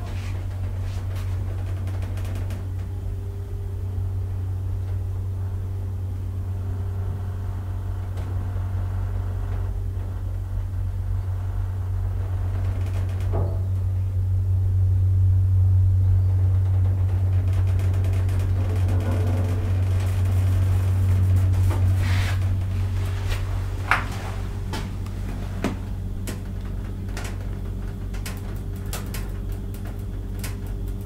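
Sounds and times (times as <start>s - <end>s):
elevator drive humming: 0.0s - 31.0s
elevator clunk: 12.6s - 14.0s
elevator click: 22.4s - 31.0s.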